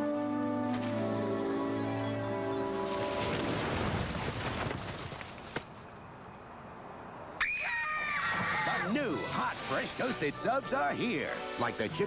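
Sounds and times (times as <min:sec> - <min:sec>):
girl screaming: 0:07.4 - 0:08.8.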